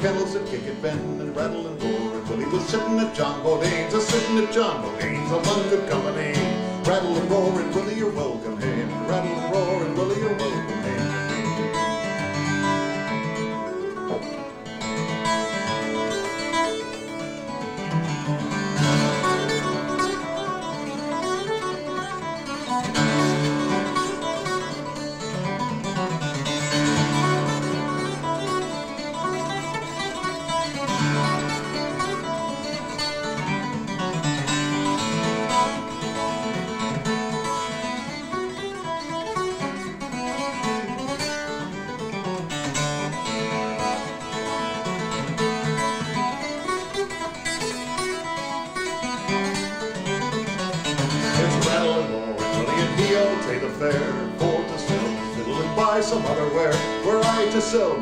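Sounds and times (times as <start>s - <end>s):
twelve-string acoustic guitar: 0.0s - 58.0s.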